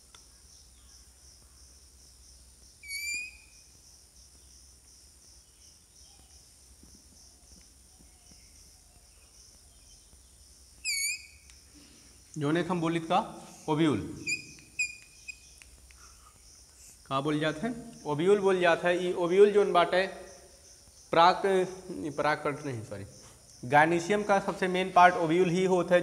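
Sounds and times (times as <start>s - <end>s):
chalk squeaking on blackboard: 2.8s - 3.5s, 10.8s - 11.5s, 14.2s - 15.9s.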